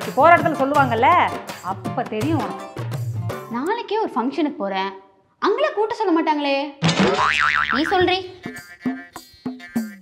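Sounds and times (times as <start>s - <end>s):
wobbling comedic sound effect: 6.9s - 8.1s.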